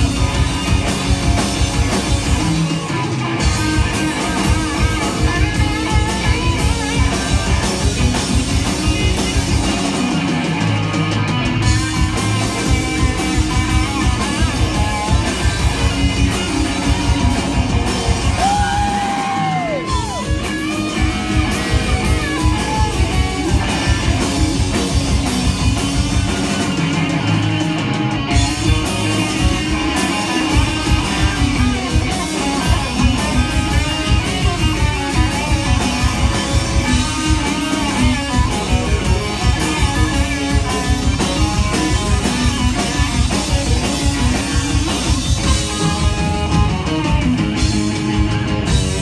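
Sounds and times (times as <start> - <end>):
live rock band playing: 0.0 - 49.0.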